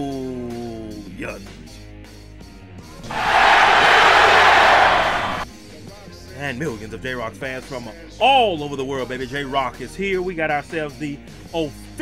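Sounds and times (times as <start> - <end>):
crowd cheering: 3.0 - 5.4.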